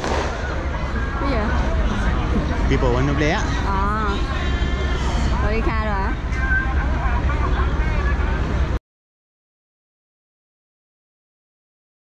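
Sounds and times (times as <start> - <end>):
low rumble: 0.0 - 8.8.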